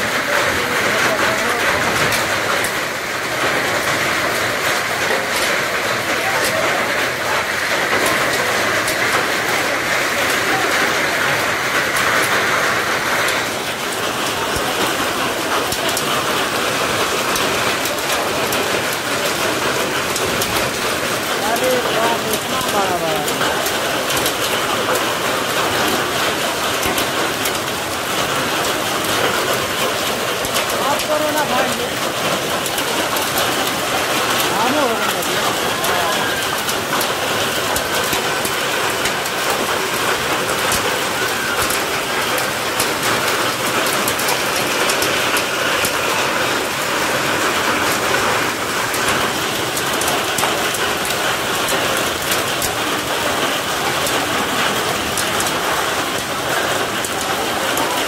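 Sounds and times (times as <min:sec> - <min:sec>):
hailstones striking surfaces: 0:00.0 - 0:58.0.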